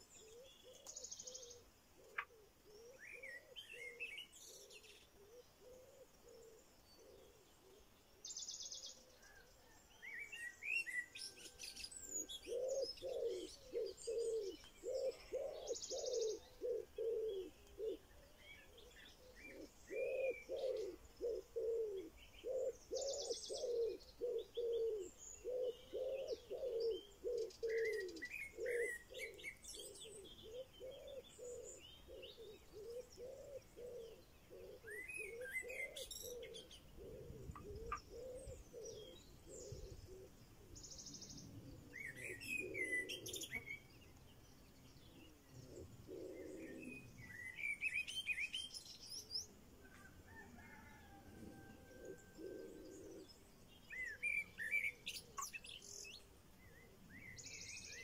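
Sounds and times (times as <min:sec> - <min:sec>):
bird cooing: 0:00.0 - 0:44.0, 0:45.0 - 0:58.0
birds chirping and twittering: 0:00.0 - 0:58.0.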